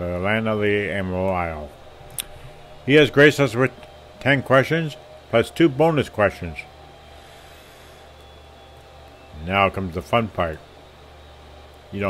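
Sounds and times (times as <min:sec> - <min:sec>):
faint room hum and hiss: 0:00.0 - 0:12.0.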